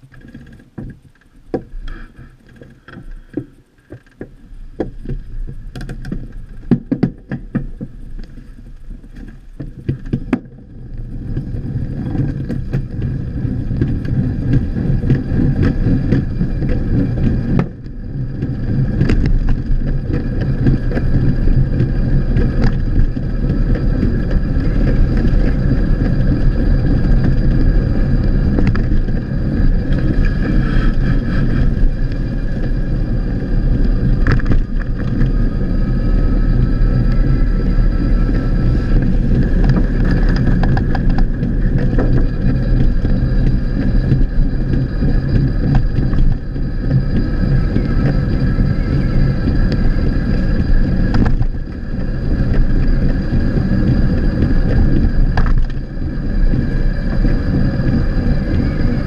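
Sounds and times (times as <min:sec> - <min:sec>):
tyres rumbling on road: 0:00.0 - 0:59.0.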